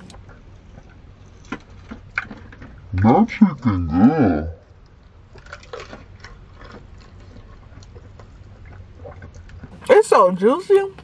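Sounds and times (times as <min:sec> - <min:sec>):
person chewing crispy food: 0:00.0 - 0:09.8
low steady hum: 0:00.0 - 0:11.0.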